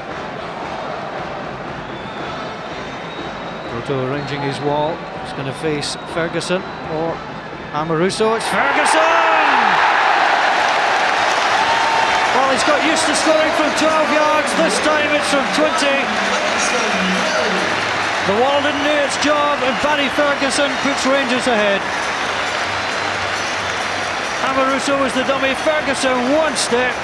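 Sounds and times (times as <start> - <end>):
stadium crowd cheering: 8.3 - 27.0.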